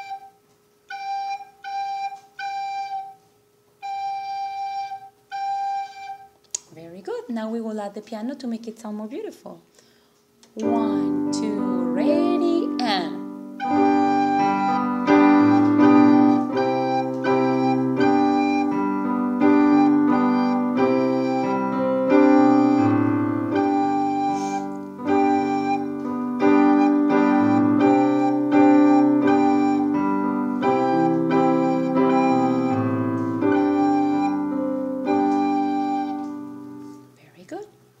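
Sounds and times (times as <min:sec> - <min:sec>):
piano accompaniment: 0:00.0 - 0:03.2, 0:10.5 - 0:37.2
recorder playing a tune: 0:00.0 - 0:06.4, 0:10.6 - 0:37.1.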